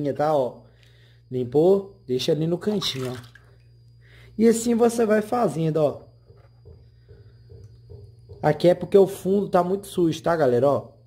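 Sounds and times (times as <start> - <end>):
low steady hum: 0.0 - 11.0
wooden board in water tray: 2.6 - 3.6
faint knocks: 6.1 - 8.7.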